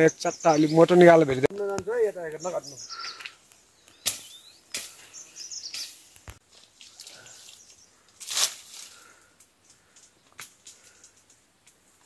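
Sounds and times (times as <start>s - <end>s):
high bird chirps: 0.0s - 1.2s, 2.2s - 6.0s.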